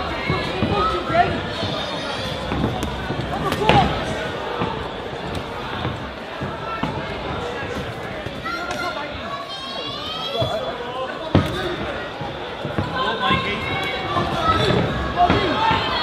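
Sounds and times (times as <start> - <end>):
voices shouting: 0.0 - 16.0.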